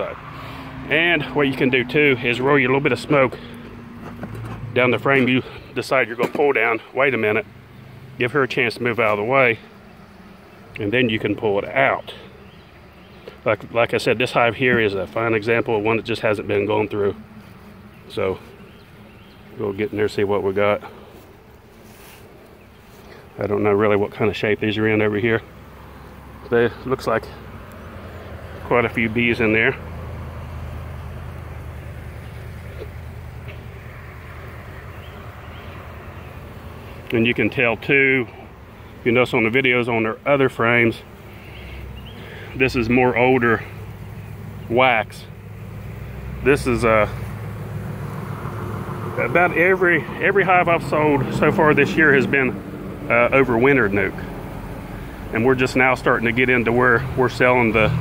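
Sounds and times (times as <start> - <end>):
honey bees buzzing: 0.0 - 58.0.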